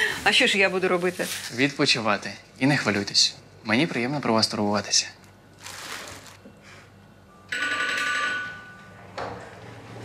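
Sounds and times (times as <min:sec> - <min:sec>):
doorbell ringing: 0:07.4 - 0:09.2.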